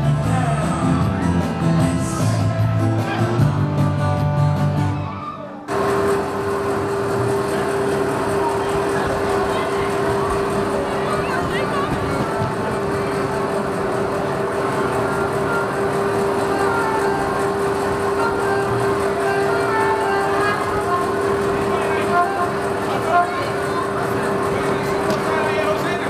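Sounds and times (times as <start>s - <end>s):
voices: 7.2s - 26.0s.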